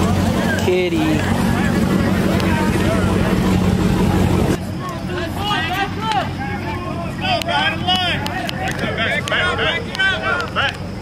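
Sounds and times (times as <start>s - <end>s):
car engine running loudly: 0.0s - 11.0s
crowd voices: 0.0s - 11.0s
distant engines idling: 0.0s - 11.0s.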